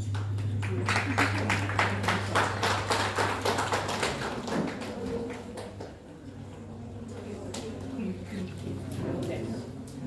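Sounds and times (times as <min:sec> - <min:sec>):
small audience clapping: 0:00.0 - 0:08.2.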